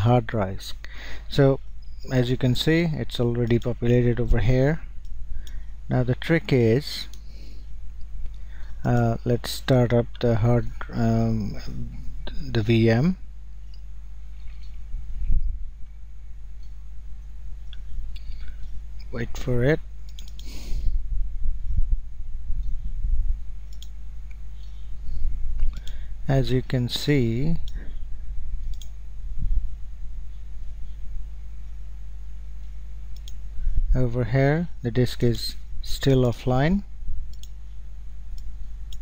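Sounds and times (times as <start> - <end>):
low electrical hum: 0.0 - 39.0
computer mouse clicks: 20.0 - 20.6, 23.6 - 24.0, 28.6 - 29.0, 33.1 - 33.4, 37.3 - 37.6.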